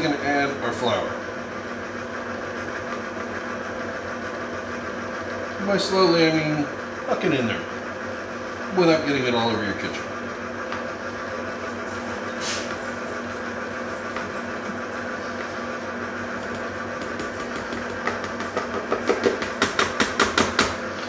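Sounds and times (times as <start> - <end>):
stand mixer motor humming: 0.0 - 21.0.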